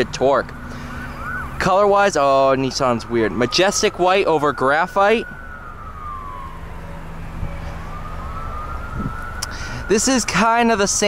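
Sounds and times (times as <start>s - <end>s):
low outdoor rumble: 0.0s - 11.0s
siren wailing: 0.0s - 11.0s.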